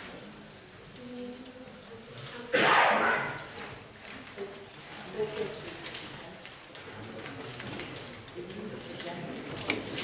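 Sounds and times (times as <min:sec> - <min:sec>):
sudden loud burst of noise: 0:02.6 - 0:03.4.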